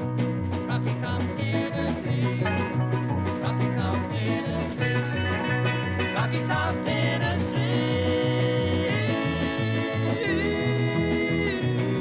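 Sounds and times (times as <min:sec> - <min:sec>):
acoustic guitar: 0:00.0 - 0:12.0
banjo: 0:00.0 - 0:12.0
steady bass line: 0:00.0 - 0:12.0
voices singing in harmony: 0:03.4 - 0:05.4, 0:06.0 - 0:12.0.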